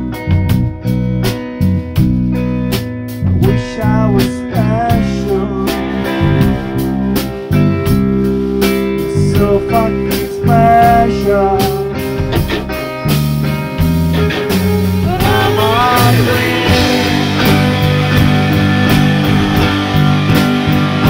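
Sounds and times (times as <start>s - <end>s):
electric guitar chords: 0.0s - 21.0s
electric guitar bent single notes: 4.8s - 13.0s.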